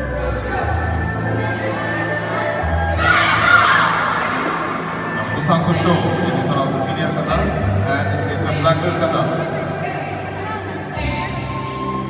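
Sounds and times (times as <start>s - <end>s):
people shouting and screaming: 1.6s - 5.2s.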